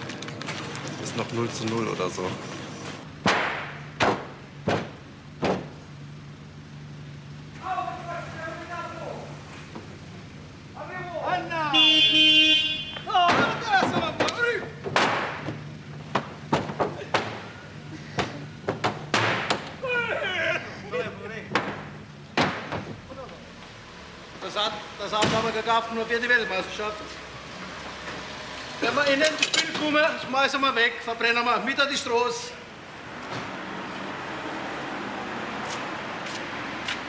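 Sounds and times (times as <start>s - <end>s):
sharp knocks and slams: 3.2s - 5.8s, 13.0s - 19.8s, 21.5s - 23.1s, 25.1s - 25.7s
car horn: 11.5s - 13.9s.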